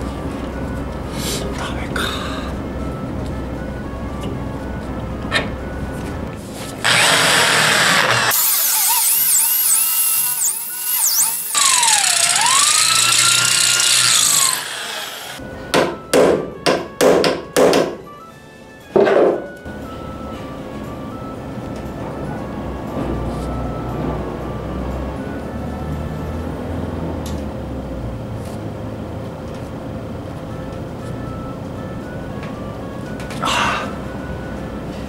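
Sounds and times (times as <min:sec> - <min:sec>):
electric drill boring into steel: 0:06.8 - 0:15.4.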